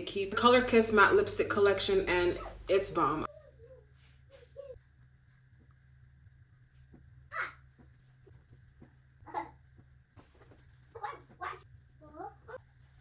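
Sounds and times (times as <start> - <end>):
steady low hum: 0.0 - 13.0
young child babbling: 3.3 - 4.8.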